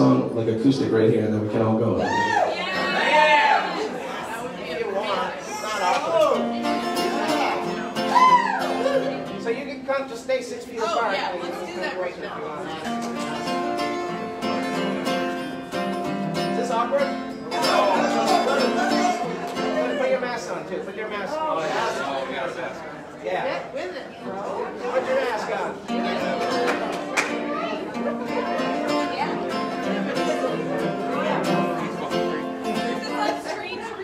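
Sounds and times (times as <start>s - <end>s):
people's voices: 0.0s - 34.0s
acoustic guitar strummed: 6.2s - 10.2s, 12.7s - 20.2s, 25.7s - 33.7s.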